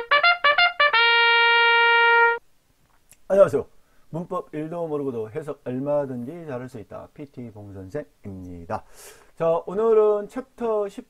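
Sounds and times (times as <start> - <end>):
brass fanfare held note: 0.0 - 2.4.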